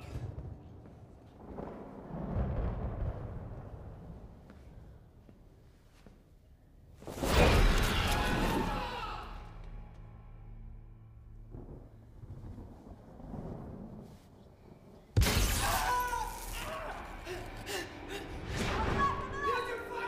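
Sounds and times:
ominous music: 7.6 - 13.4, 15.9 - 20.0
glass shattering crash: 15.2 - 17.1.

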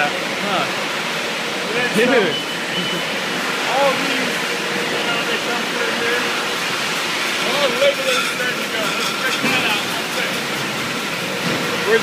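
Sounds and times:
bottling line machinery din: 0.0 - 12.0.

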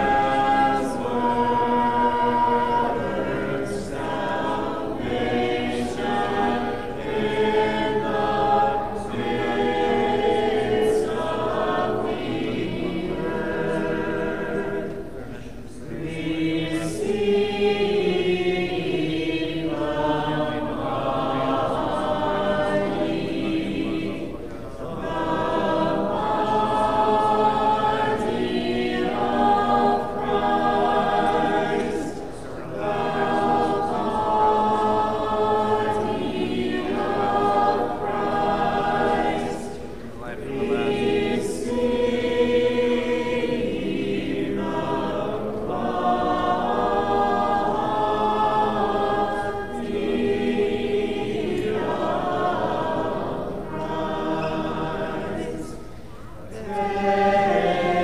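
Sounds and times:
church choir chanting in harmony: 0.0 - 58.0.

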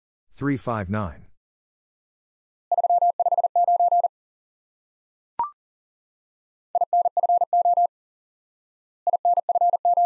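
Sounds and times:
morse code tone: 6.8 - 7.9, 9.1 - 10.0.

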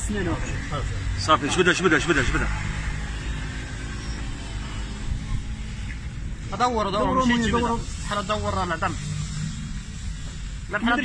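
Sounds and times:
even hiss: 0.0 - 11.0.

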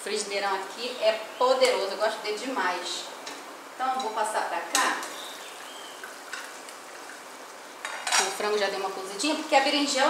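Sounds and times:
pot simmering hiss: 0.0 - 10.0.

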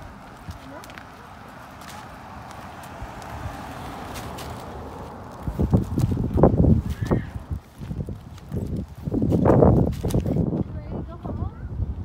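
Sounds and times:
footsteps on pavement: 0.0 - 11.3.

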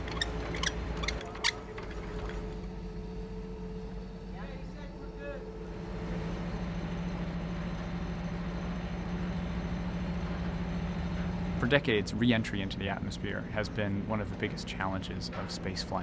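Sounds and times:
tow tug engine running: 0.0 - 16.0.

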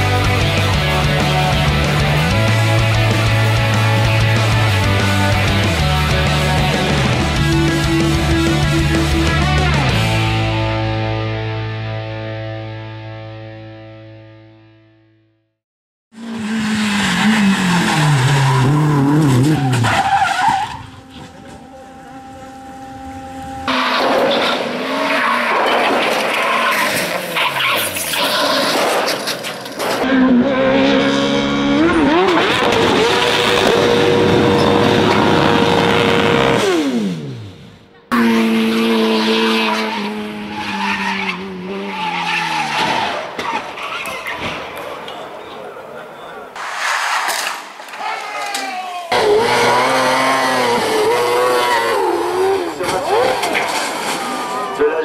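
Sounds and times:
racing car engines revving: 0.0 - 11.0, 16.2 - 47.5, 49.1 - 55.0
tyre squeal: 17.6 - 21.8.

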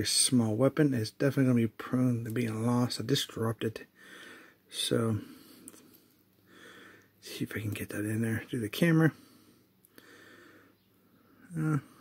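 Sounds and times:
man saying uh: 11.5 - 12.0.

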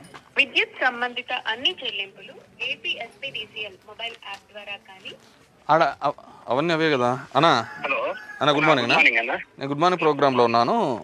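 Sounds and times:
man speaking: 8.4 - 11.0.

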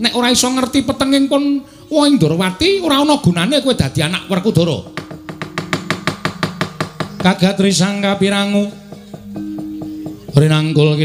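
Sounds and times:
low held tone: 3.7 - 10.5
rapid wooden mallet knocking: 3.9 - 10.8.

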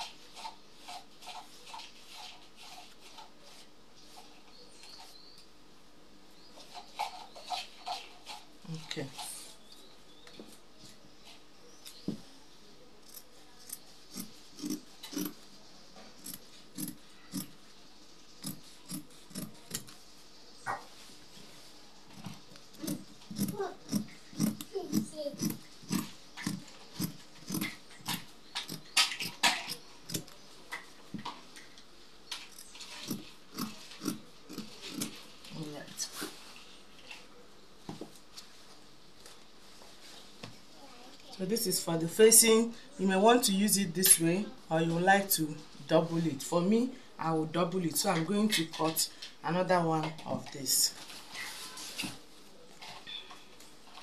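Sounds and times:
fabric scissors snipping: 13.1 - 15.3, 18.4 - 20.0, 22.8 - 30.4, 32.5 - 35.1.

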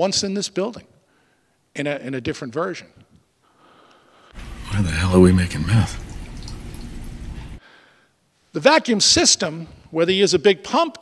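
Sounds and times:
coffee pouring into mug: 4.4 - 7.6.

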